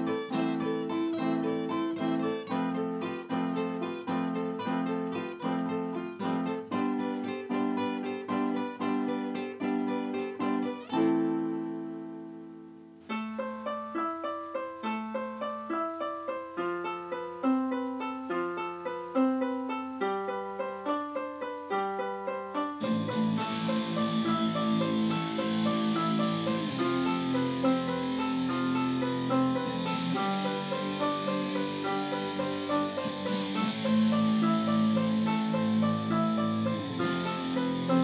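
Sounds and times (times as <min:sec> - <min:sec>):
fingerpicked acoustic guitar: 0:00.0 - 0:12.6, 0:22.6 - 0:38.0
piano single notes: 0:00.0 - 0:38.0.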